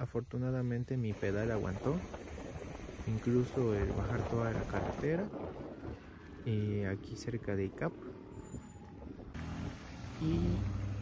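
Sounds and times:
vehicle engine driving by: 0:05.7 - 0:11.0.

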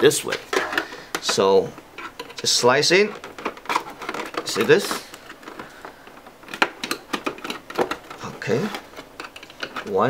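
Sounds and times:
metal tool prying plastic case: 0:06.4 - 0:09.9
plastic clips snapping: 0:06.4 - 0:10.0.

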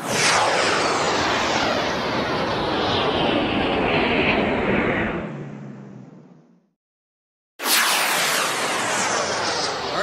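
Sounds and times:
jet-like rushing whoosh: 0:07.6 - 0:10.0.

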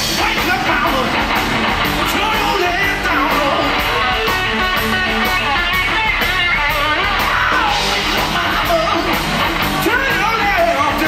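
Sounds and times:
drum kit beat: 0:00.0 - 0:11.0
electric bass: 0:00.0 - 0:11.0
electric guitar: 0:00.0 - 0:11.0
man singing lead vocal: 0:02.1 - 0:03.9, 0:07.1 - 0:09.2, 0:09.8 - 0:11.0.

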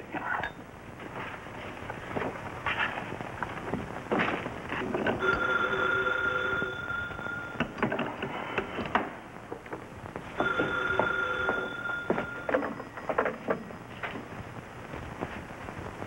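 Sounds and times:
desk telephone ringing: 0:05.2 - 0:07.8, 0:10.4 - 0:13.4.

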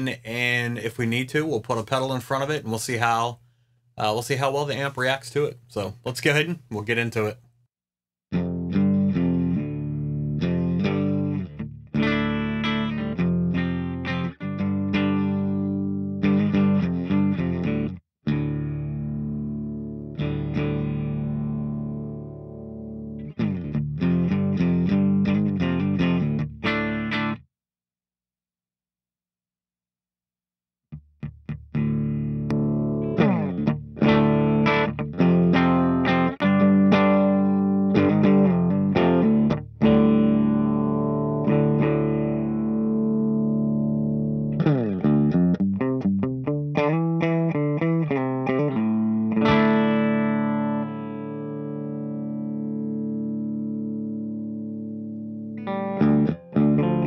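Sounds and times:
electric guitar chords: 0:08.3 - 0:27.4, 0:30.9 - 0:57.0.

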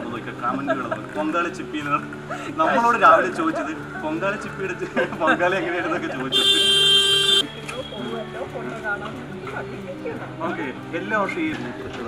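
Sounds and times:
loud buzzer tone: 0:06.4 - 0:07.4.

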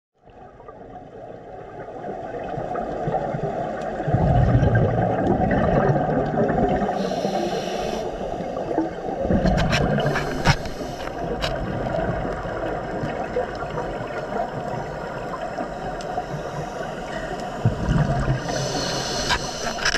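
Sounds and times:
muffled underwater water rush: 0:00.2 - 0:19.9
scuba exhaled bubbles: 0:00.3 - 0:19.9
loud bubbling rumbles: 0:04.1 - 0:06.9, 0:17.7 - 0:18.4.

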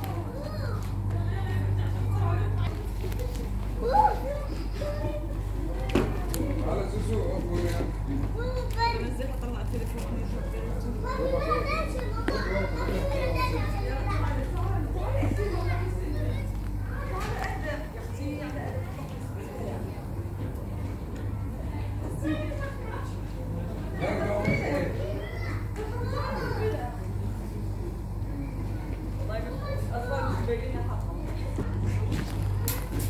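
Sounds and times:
children chattering and calling: 0:00.0 - 0:33.0
steady low hum: 0:00.0 - 0:33.0.

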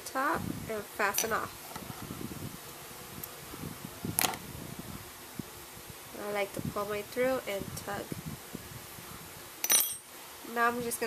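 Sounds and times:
metal hook clinking on table: 0:09.6 - 0:10.0.

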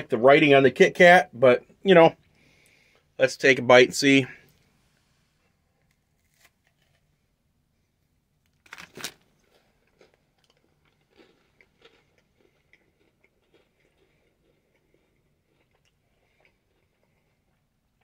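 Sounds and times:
crunchy chewing: 0:05.8 - 0:07.1, 0:08.7 - 0:18.0.

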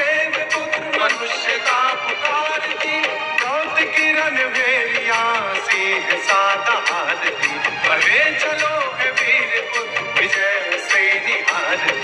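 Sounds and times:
instrumental backing with sharp beats: 0:00.0 - 0:12.0
person singing a melody: 0:00.0 - 0:12.0.

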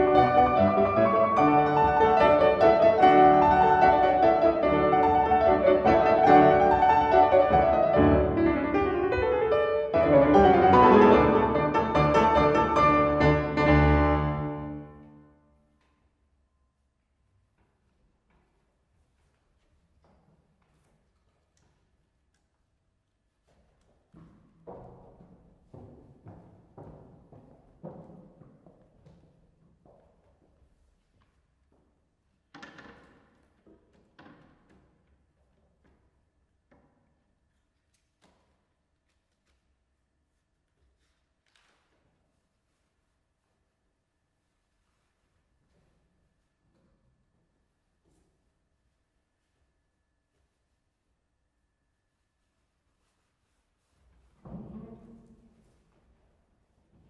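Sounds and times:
two pianos playing classical duo: 0:00.0 - 0:15.3
footsteps on wooden stage: 0:23.4 - 0:32.0.

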